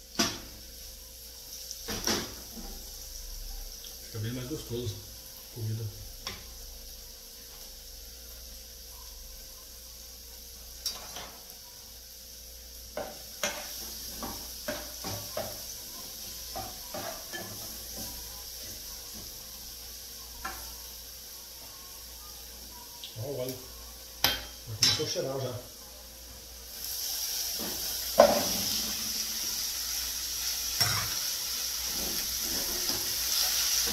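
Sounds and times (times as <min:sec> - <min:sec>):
garlic sizzling in oil: 0:00.0 - 0:33.9
metal spoon scraping a pan: 0:30.8 - 0:33.9.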